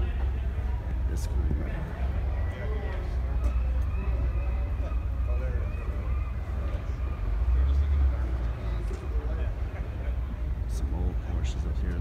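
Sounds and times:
steady low rumble: 0.0 - 2.4
faint voices talking: 0.0 - 12.0.

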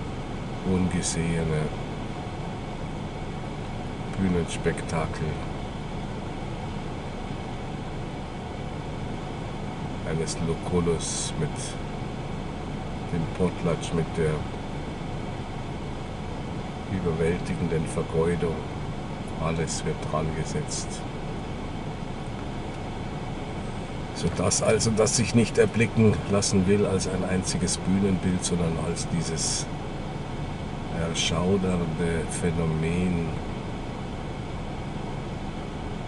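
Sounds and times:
steady low rumble and hiss: 0.0 - 36.0.

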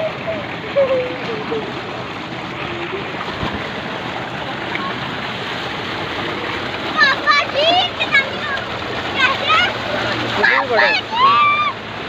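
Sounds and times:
water pouring into a tank: 0.0 - 12.0.

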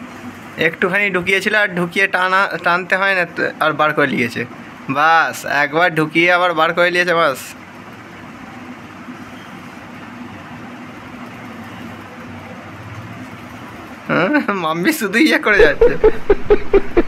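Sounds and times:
person speaking: 14.1 - 16.6.

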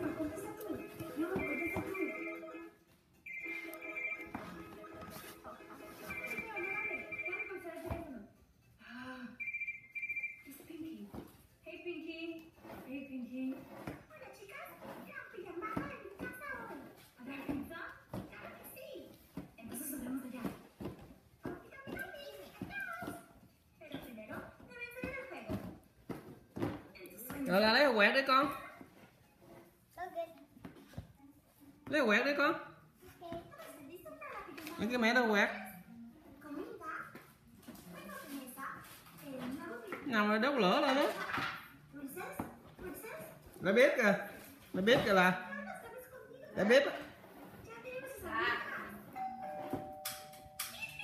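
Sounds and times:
two-note chime: 49.2 - 50.8.

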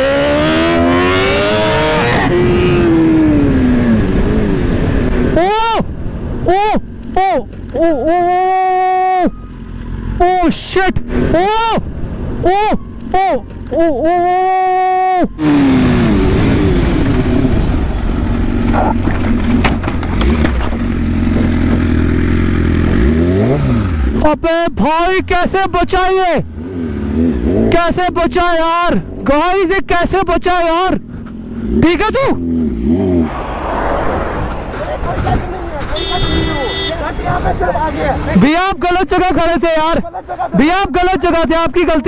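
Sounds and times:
motorcycle engine revving: 0.0 - 5.4, 15.3 - 24.3, 26.4 - 28.0, 31.0 - 38.4
motorcycle running: 0.0 - 29.7, 30.4 - 33.6
car passing by: 32.7 - 35.7
wind noise: 33.2 - 38.3.

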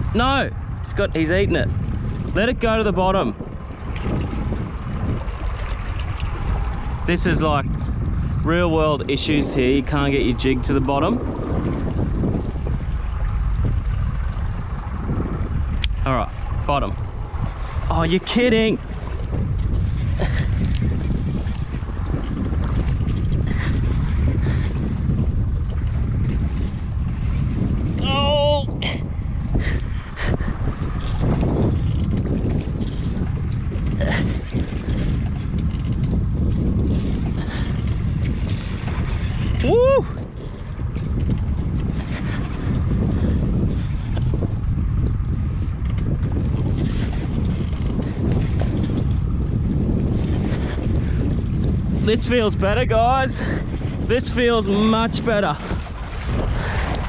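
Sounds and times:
water around boat: 0.0 - 57.0
wind rumbling on microphone: 0.0 - 57.0.

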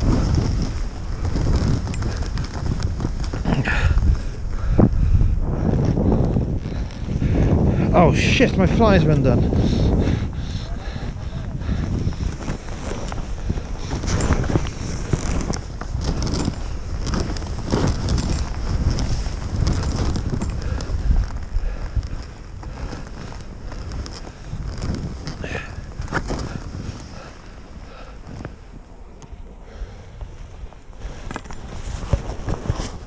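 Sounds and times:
skis scraping through snow: 0.0 - 33.0
wind rushing over microphone: 0.0 - 33.0.

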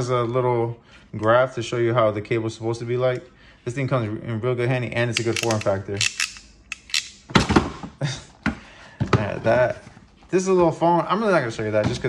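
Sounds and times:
tool thunks in plastic box: 7.3 - 7.9.

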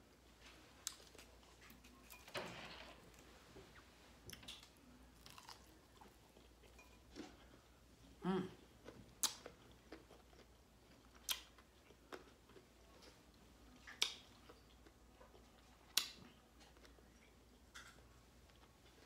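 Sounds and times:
quiet chewing: 0.1 - 2.2, 3.5 - 19.0
person humming: 8.2 - 8.6.

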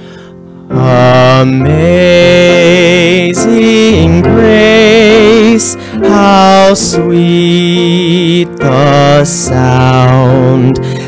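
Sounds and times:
sustained keyboard chords: 0.0 - 11.0
person singing a slow hymn: 0.6 - 11.0.

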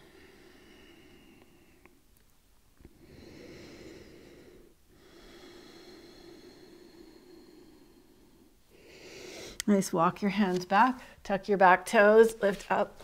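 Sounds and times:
woman breathing slowly: 0.0 - 2.1, 2.8 - 9.6.

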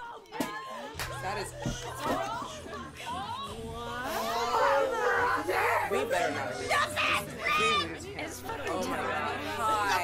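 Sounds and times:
music: 0.0 - 10.0
women chattering and exclaiming: 0.0 - 10.0.

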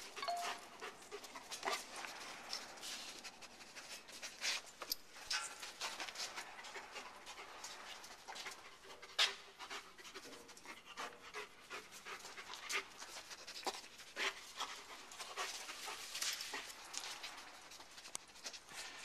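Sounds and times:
dog panting and sniffing: 0.0 - 19.0.

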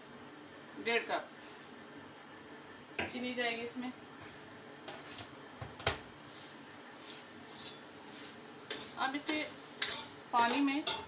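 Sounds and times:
metal kitchenware clinking: 7.5 - 7.8, 8.7 - 11.0.

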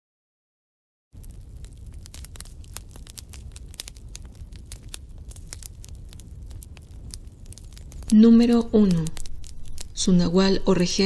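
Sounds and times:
dense irregular crackling: 1.2 - 11.0
low rumble: 1.2 - 11.0.

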